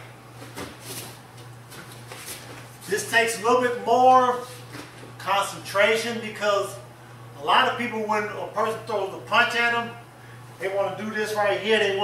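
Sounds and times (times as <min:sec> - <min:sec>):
steady low hum: 0:00.0 - 0:12.0
rustling on gym mat: 0:00.3 - 0:03.1.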